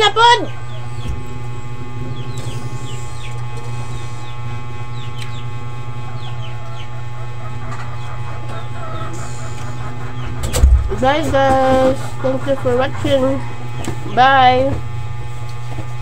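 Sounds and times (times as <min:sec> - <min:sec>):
chickens peeping and clucking: 0:00.0 - 0:14.8
low steady hum: 0:00.0 - 0:16.0.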